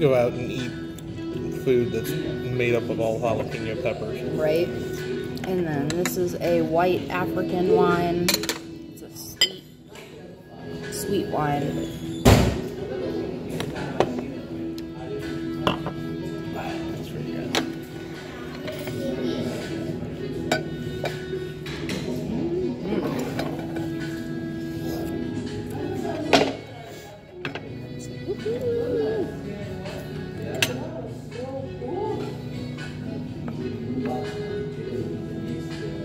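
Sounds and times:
background music: 0:00.0 - 0:36.0
cutlery and glass clinking: 0:08.3 - 0:08.7
faint voices: 0:09.1 - 0:36.0.

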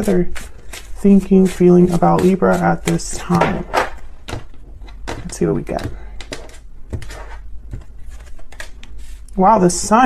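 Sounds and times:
cards shuffling: 0:00.3 - 0:09.3.

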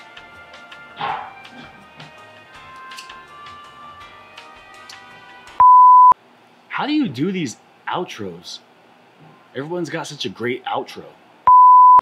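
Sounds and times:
faint background music: 0:00.0 - 0:05.6
steady beep tone: 0:05.6 - 0:06.2, 0:11.5 - 0:12.0.

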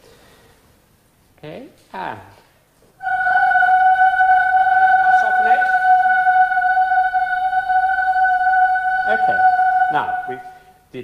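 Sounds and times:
boys singing held note: 0:03.0 - 0:10.9.

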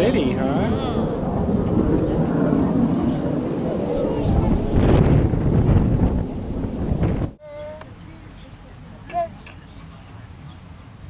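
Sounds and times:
wind buffeting microphone: 0:00.0 - 0:08.5
high-pitched voice: 0:07.4 - 0:07.9, 0:09.1 - 0:09.4.

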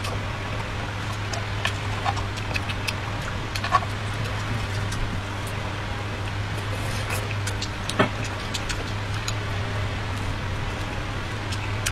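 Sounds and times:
chewing with wet clicks and smacks: 0:00.0 - 0:11.9
steady low hum: 0:00.0 - 0:11.9.

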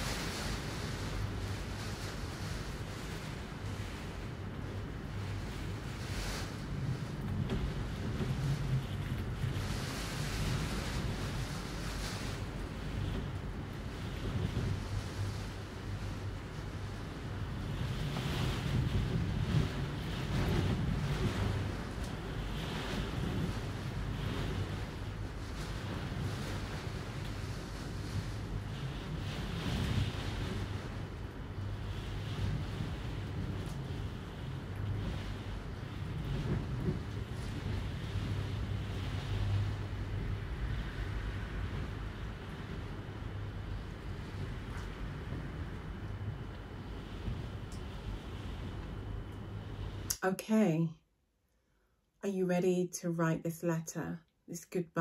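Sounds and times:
ocean surf washing: 0:00.0 - 0:50.7
low steady hum: 0:00.0 - 0:55.0
wind: 0:00.0 - 0:55.0.

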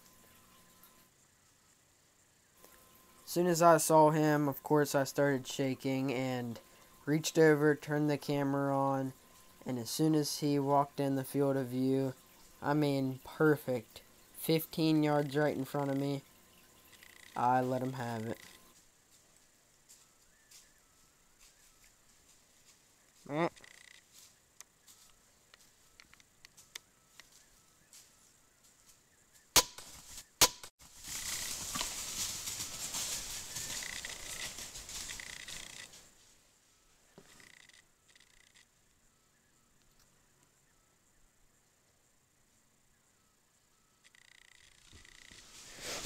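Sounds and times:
bow shot cracks: 0:29.5 - 0:30.7
deer crashing through dry leaves: 0:29.8 - 0:36.2.

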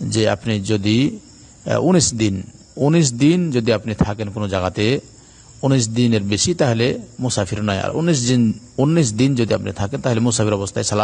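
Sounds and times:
man lecturing: 0:00.0 - 0:11.0.

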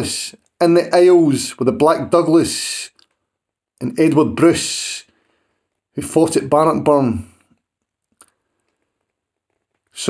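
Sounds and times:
man speaking: 0:00.0 - 0:03.1, 0:03.8 - 0:05.2, 0:05.9 - 0:07.5.

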